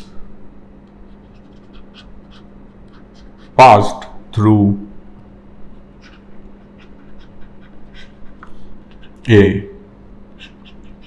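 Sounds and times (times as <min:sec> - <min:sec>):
electrical hum: 0:00.0 - 0:11.0
stylus scratching on tablet screen: 0:01.0 - 0:03.6, 0:06.0 - 0:09.3, 0:10.3 - 0:11.0.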